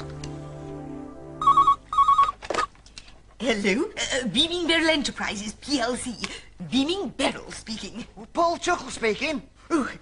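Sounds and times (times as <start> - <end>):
telephone ringing: 1.4 - 2.7.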